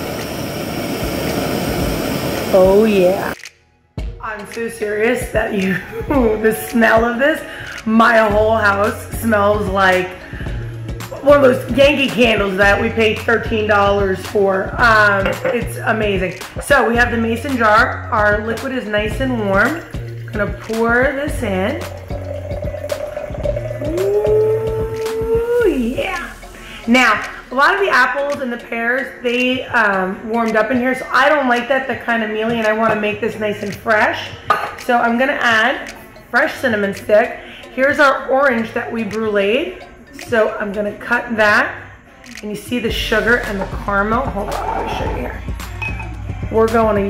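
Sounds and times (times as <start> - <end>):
kitchen torch flame hissing: 0.0 - 3.4
liquid pouring into a glass jar: 21.8 - 24.4.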